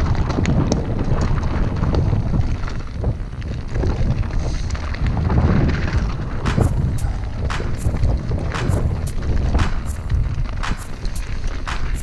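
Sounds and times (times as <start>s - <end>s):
bike tyres rattling over stones: 0.0s - 12.0s
wind on microphone: 0.0s - 12.0s
sharp knocks: 6.5s - 12.0s.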